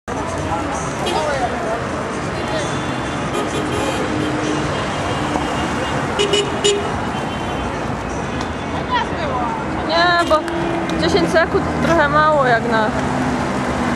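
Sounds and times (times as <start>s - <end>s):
cars driving past: 0.1s - 13.9s
car horn toot: 2.9s - 7.7s.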